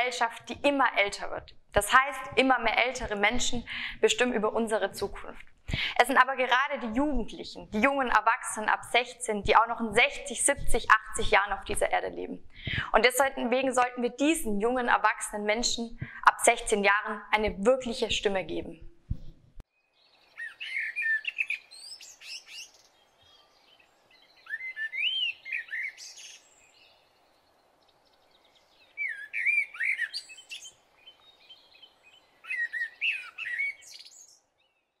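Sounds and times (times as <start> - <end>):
faint background noise: 0.0 - 34.6
bird chirping: 19.1 - 35.0.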